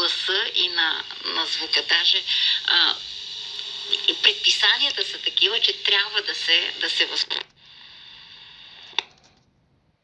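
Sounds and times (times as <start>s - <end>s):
speaker hiss: 0.0s - 9.3s.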